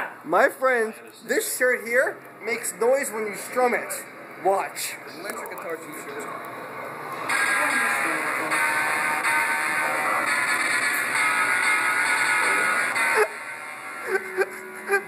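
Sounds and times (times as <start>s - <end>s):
electric guitar chords from speaker: 7.3s - 14.9s.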